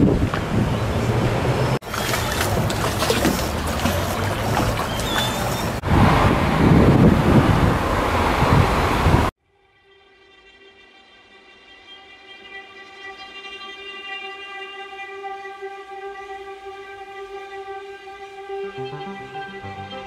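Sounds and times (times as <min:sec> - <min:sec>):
river ambience: 0:00.0 - 0:09.3
wind rumbling on microphone: 0:00.0 - 0:09.3.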